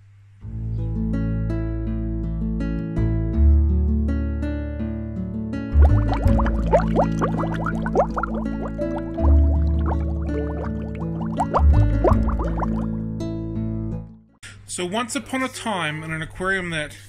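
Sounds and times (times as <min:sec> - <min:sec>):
bubbling rising blips: 0:05.8 - 0:13.0.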